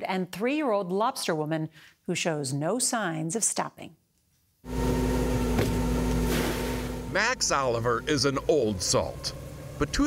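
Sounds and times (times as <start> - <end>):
boat engine running: 4.7 - 10.0.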